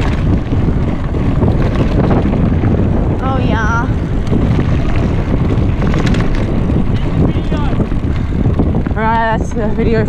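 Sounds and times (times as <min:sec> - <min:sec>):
bike rattling knocks: 0:00.0 - 0:09.8
bike tyre noise: 0:00.0 - 0:10.0
wind rumbling on microphone: 0:00.0 - 0:10.0.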